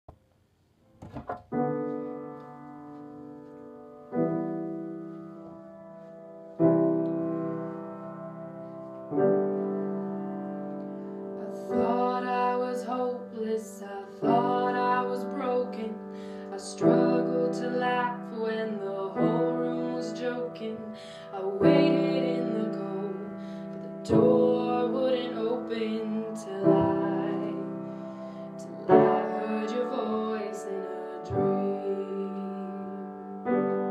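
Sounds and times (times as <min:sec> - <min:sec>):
acoustic piano playing chords: 0:01.4 - 0:33.9.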